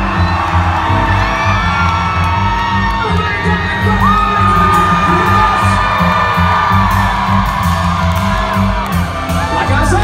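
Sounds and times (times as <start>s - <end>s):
drums keeping steady beat: 0.0s - 10.0s.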